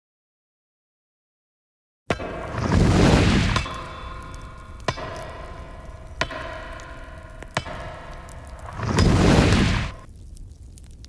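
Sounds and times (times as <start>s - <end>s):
sharp cracks: 2.1s - 11.0s
sustained drone: 3.6s - 10.0s.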